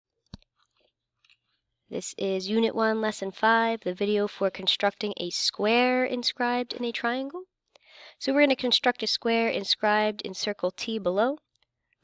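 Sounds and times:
person speaking: 1.9 - 7.4, 8.2 - 11.4.

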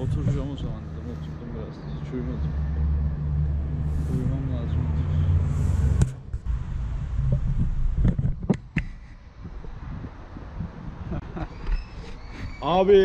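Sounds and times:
vehicle engine rumble: 0.0 - 11.8.

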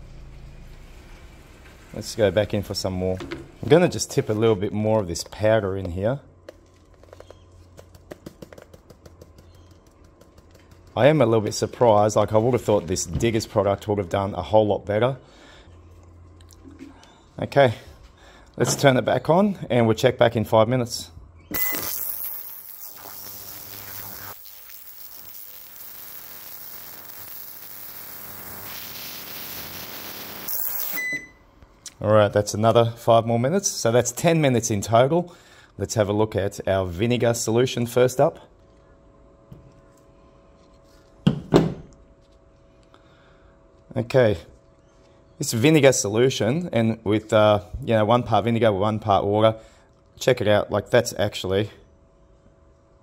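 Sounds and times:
powder ticking into liquid: 6.4 - 11.0
short electronic beep: 21.5 - 22.3, 30.5 - 31.4
ultrasonic cleaner hiss: 21.6 - 31.0.

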